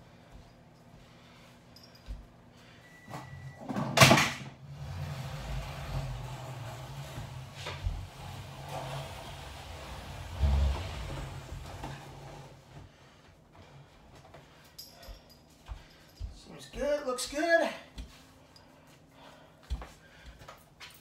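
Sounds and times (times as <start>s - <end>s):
armchair dragged across floor: 4.6s - 13.0s.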